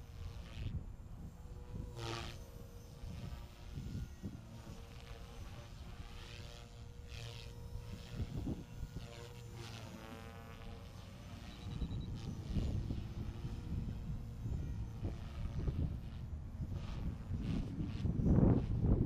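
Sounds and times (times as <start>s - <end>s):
rc helicopter motor whine: 0.0s - 19.0s
rotor blade noise: 0.0s - 19.0s.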